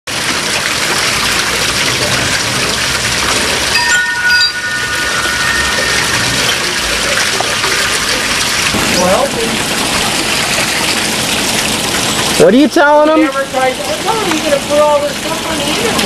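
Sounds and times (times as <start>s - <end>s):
falling water splashing: 0.1s - 16.0s
chime-like ringing: 3.5s - 8.4s.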